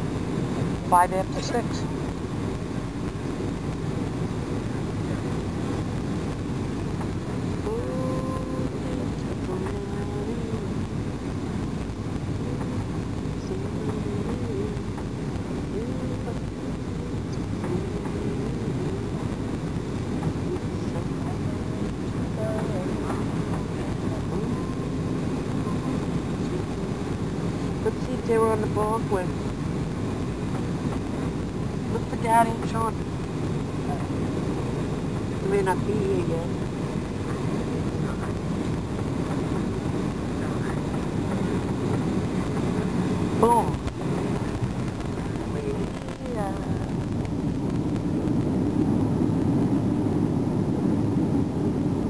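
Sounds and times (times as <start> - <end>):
airplane cabin engine roar: 0.0 - 52.0
faint voices: 7.0 - 29.6, 30.4 - 48.5.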